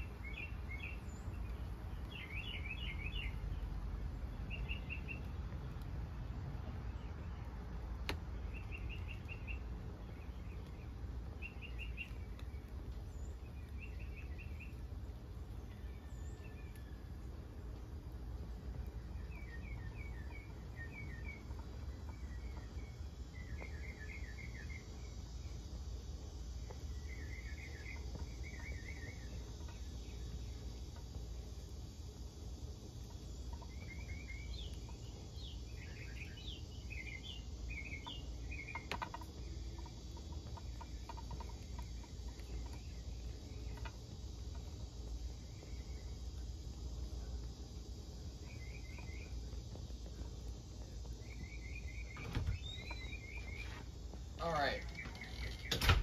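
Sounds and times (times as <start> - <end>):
birds chirping: 0.0 - 56.0
low background rumble: 0.0 - 56.0.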